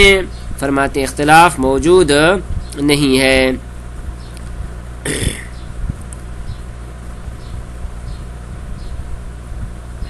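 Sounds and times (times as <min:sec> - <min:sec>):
steady low hum: 0:00.0 - 0:10.0
man's breathy throat sound: 0:05.0 - 0:05.6.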